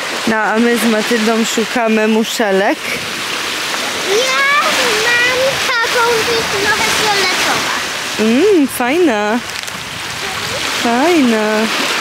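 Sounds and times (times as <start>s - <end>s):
waves washing onto beach: 0.0s - 12.0s.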